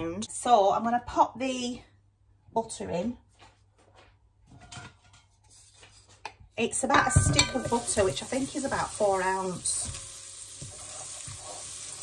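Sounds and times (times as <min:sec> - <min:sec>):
plate and utensils clattering: 0:06.9 - 0:08.1.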